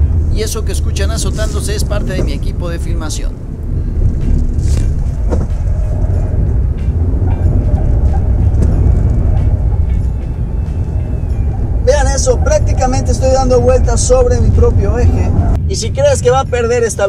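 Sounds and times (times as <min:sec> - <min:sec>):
car engine and road rumble: 0:00.0 - 0:17.0.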